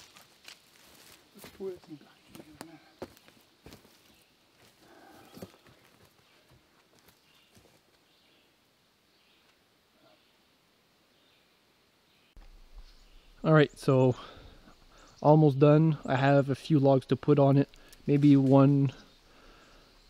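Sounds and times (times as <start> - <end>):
faint footsteps: 0.0 - 8.1.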